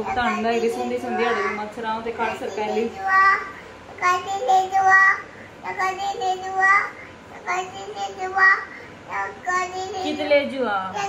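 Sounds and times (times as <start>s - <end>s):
child singing: 2.5s - 10.1s.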